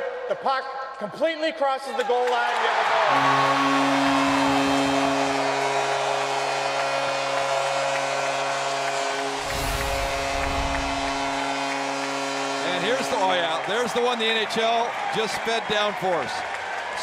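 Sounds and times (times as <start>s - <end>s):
crowd cheering: 1.8s - 17.0s
arena goal horn: 2.9s - 15.8s
deep rumble: 9.4s - 12.1s.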